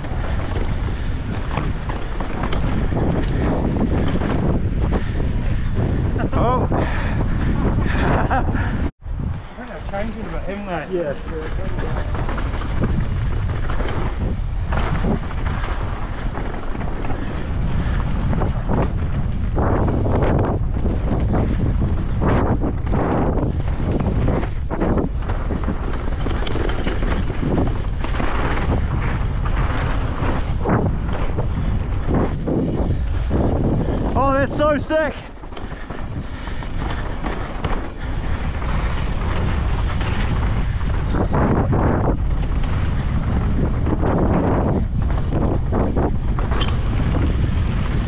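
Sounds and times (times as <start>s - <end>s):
tyres on dirt and bike rattle: 0.0s - 8.9s, 9.6s - 48.0s
wind buffeting microphone: 0.0s - 48.0s.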